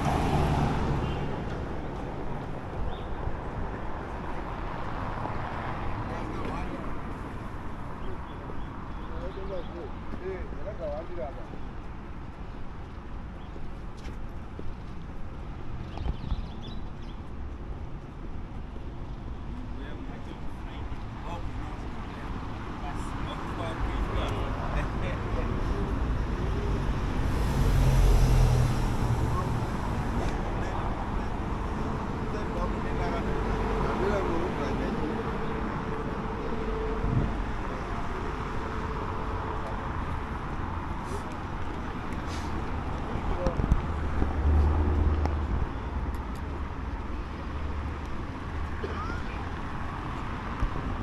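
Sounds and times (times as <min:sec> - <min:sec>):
vehicle passing: 0:00.0 - 0:02.8, 0:22.3 - 0:51.0
street traffic rumble: 0:00.0 - 0:51.0.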